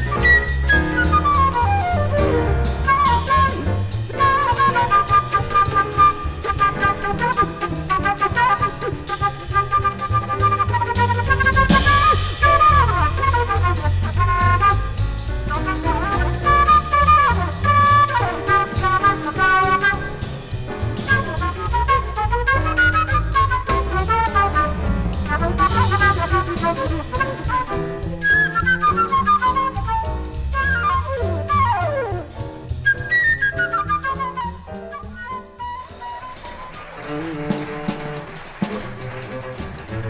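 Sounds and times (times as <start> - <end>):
bowed double bass: 0.0 - 40.0
double bass: 0.0 - 40.0
drum kit: 0.0 - 40.0
flute playing fast lines: 0.0 - 40.0.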